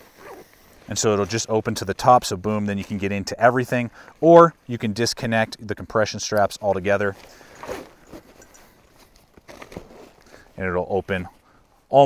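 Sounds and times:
backpack fabric rustling: 0:00.0 - 0:04.2, 0:06.5 - 0:11.5.

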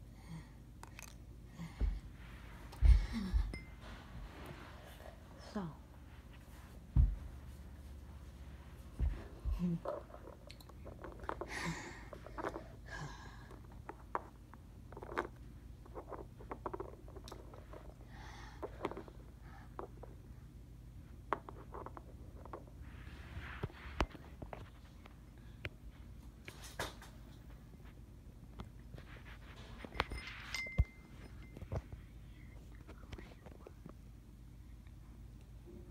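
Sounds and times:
person whispering: 0:32.6 - 0:33.8.

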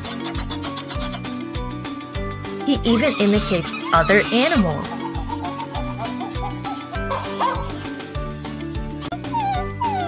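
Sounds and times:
upbeat background music: 0:00.0 - 0:10.0.

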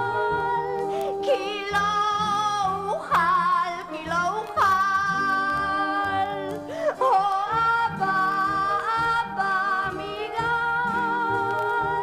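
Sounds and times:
person singing long note: 0:00.0 - 0:03.0
instrumental accompaniment: 0:00.0 - 0:12.0.

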